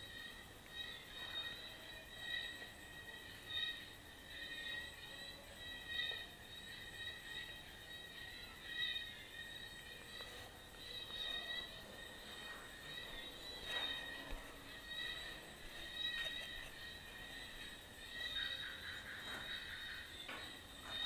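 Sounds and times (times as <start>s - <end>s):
faint music with high notes: 0.0s - 21.0s.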